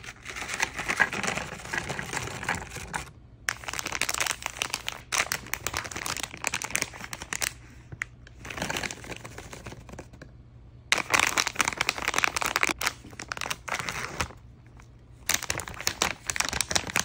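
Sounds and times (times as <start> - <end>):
plastic packaging crinkling: 0.0 - 10.2, 10.9 - 17.0.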